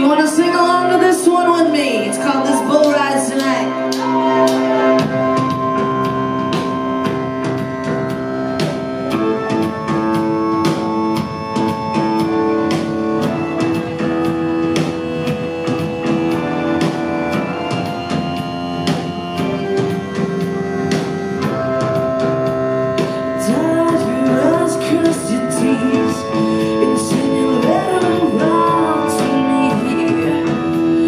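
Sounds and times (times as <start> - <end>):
held electric guitar notes: 2.0 - 31.0
steady drum beat: 2.2 - 31.0.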